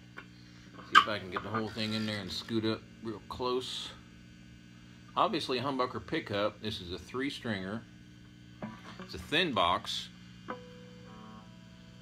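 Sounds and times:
low steady hum: 0:00.0 - 0:12.0
guitar string ringing: 0:10.4 - 0:12.0.

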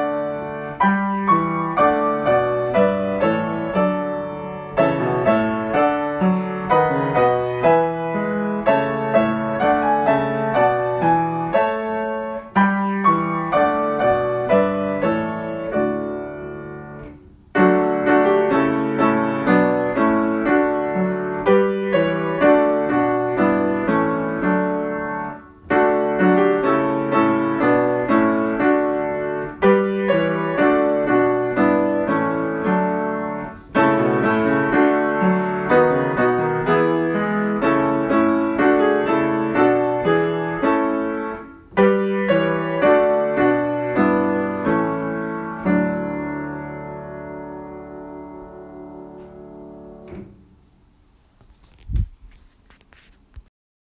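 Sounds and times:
solo piano hymn in chords: 0:00.0 - 0:50.9.

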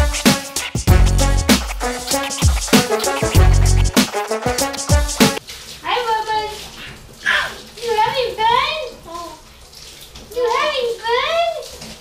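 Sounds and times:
background music: 0:00.0 - 0:05.4
shower head spraying water: 0:00.0 - 0:05.5.

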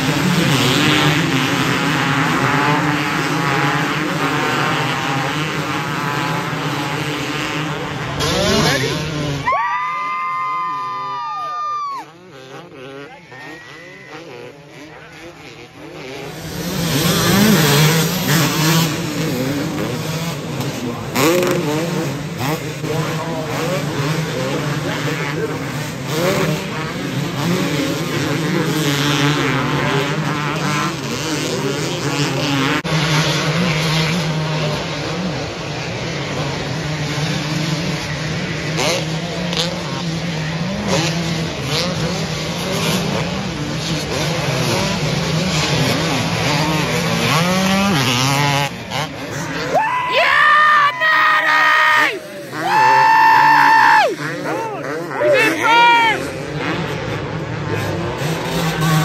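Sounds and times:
dirt bike engines revving: 0:00.0 - 0:59.0.

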